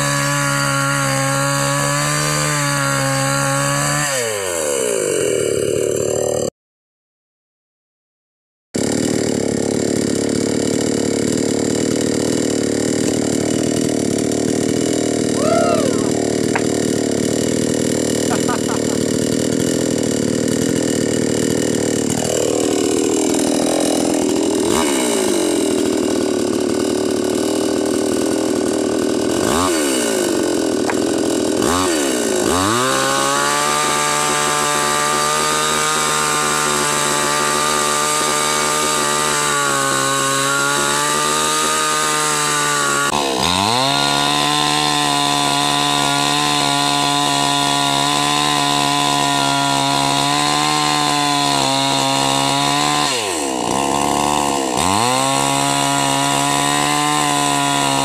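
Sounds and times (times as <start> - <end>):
chainsaw cutting tree trunk: 0.0 - 6.5, 8.8 - 58.0
chainsaw running: 0.0 - 6.5, 8.8 - 58.0.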